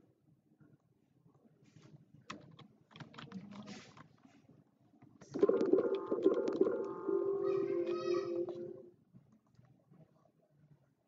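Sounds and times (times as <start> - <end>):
computer keyboard clicking: 2.3 - 3.6.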